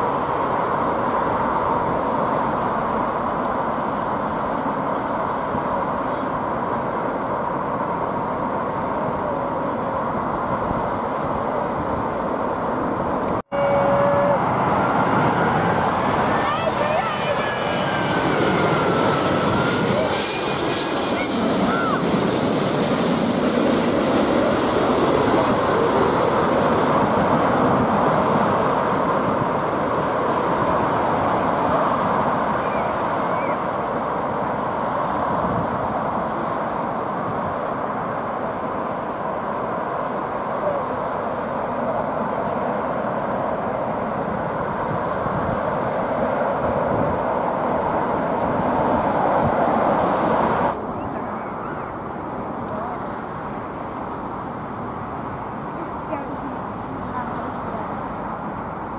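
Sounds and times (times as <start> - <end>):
jet airliner passing overhead: 0.0 - 58.9.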